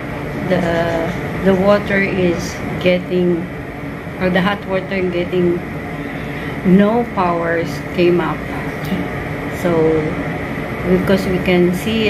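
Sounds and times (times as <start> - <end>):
faint high whine: 0.0 - 12.0
steady mechanical hum: 0.0 - 12.0.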